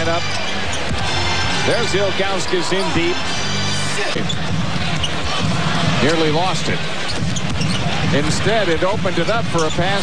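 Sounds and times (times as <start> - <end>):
arena crowd murmur: 0.0 - 10.0.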